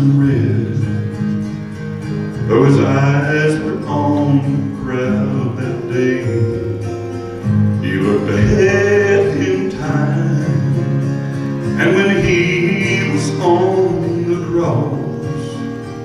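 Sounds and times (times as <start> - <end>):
man singing into microphone: 0.0 - 1.1, 2.4 - 7.0, 7.8 - 15.7
guitar: 0.0 - 16.0.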